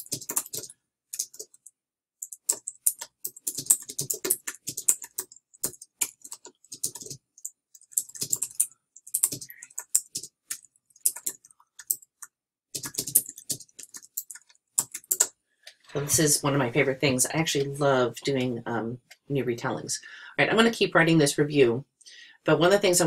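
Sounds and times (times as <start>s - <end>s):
fast keyboard typing: 0.0s - 15.4s.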